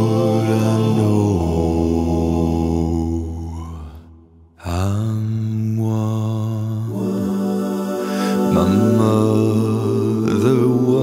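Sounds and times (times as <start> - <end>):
a cappella voices holding chord: 0.0 - 3.8, 4.6 - 11.0.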